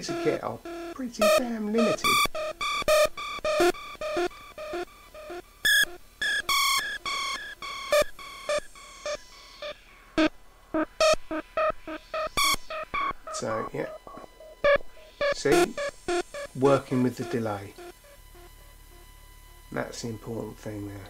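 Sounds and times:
synthesizer bleeps with delay echoes: 11.0 - 19.0.

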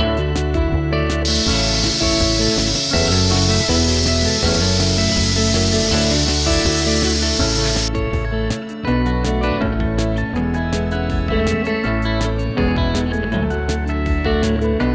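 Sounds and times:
steam cleaner nozzle hissing: 1.3 - 7.9
guitar music: 1.3 - 9.2.

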